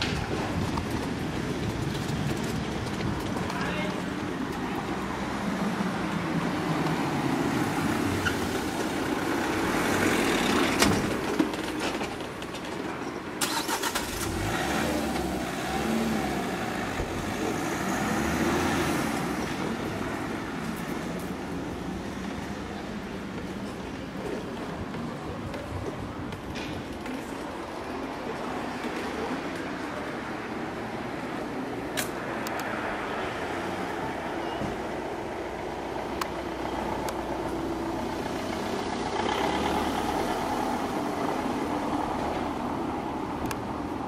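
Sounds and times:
wheelchair rolling on asphalt: 0:00.0 - 0:31.4
street noise: 0:00.0 - 0:44.0
car driving past: 0:13.4 - 0:20.5
sharp click: 0:32.0 - 0:32.7.

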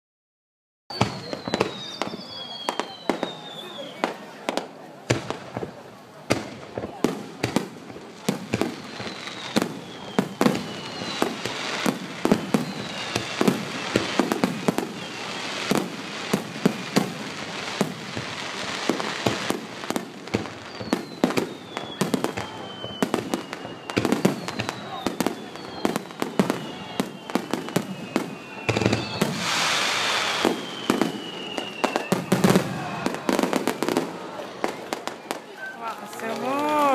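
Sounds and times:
falling fireworks whistles: 0:00.9 - 0:36.9
fireworks bangs: 0:00.9 - 0:36.9.

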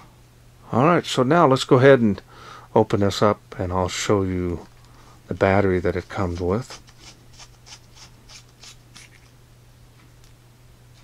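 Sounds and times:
metal threads rasping: 0:05.8 - 0:09.3.

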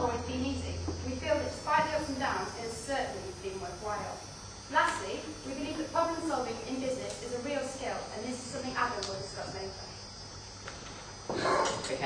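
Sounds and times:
faint high-pitched whine: 0:00.0 - 0:12.0
low hiss: 0:00.0 - 0:12.0.

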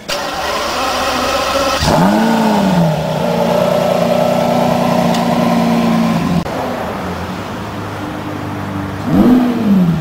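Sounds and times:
car engine starting: 0:00.0 - 0:07.4.

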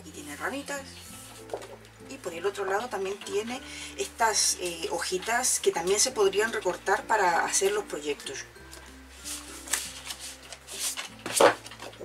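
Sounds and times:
soft background music: 0:00.0 - 0:12.0
paper sheets rustling: 0:01.0 - 0:01.8, 0:08.7 - 0:12.0
paper swishes: 0:09.1 - 0:11.6.

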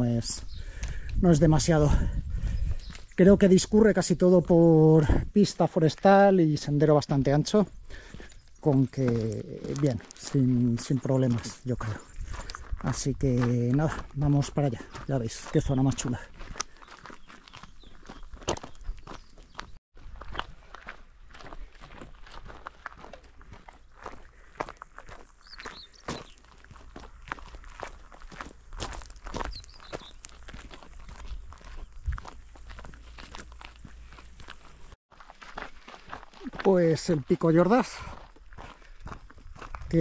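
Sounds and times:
footsteps on gravel: 0:02.8 - 0:40.0.

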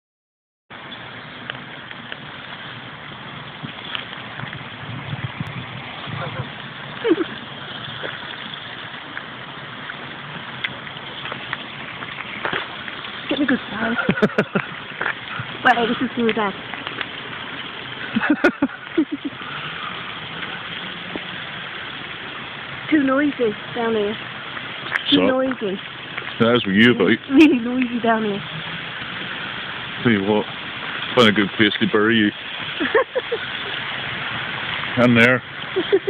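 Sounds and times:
water pouring over weir: 0:00.8 - 0:36.0
low thuds: 0:03.4 - 0:13.7
laugh-like vocal sounds: 0:06.2 - 0:07.4, 0:13.9 - 0:14.8, 0:18.0 - 0:19.6, 0:32.8 - 0:33.8, 0:35.7 - 0:36.0.

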